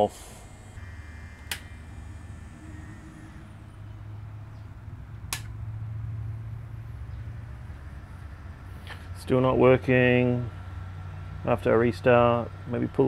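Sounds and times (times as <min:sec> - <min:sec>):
cooling fans humming: 0:00.0 - 0:13.0
sharp click: 0:01.4 - 0:01.7, 0:05.3 - 0:05.5.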